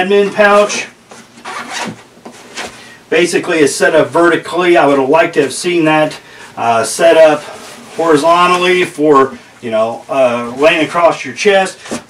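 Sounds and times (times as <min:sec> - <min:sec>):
zipper being pulled open: 0:01.4 - 0:02.0.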